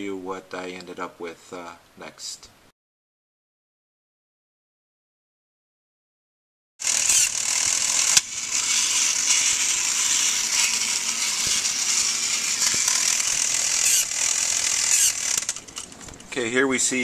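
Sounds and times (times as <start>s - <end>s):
toy motor and gears whirring: 6.8s - 16.2s
sharp click: 8.1s - 8.3s.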